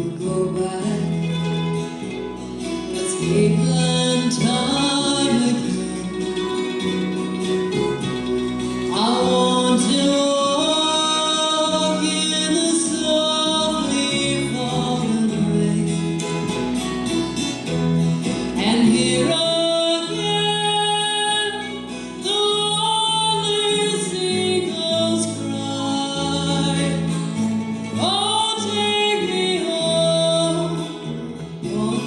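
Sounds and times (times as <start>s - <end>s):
person singing: 0.0s - 2.3s, 2.9s - 16.7s, 18.2s - 32.0s
acoustic guitars: 0.0s - 32.0s
electric bass: 0.0s - 32.0s
mandolin: 0.0s - 32.0s.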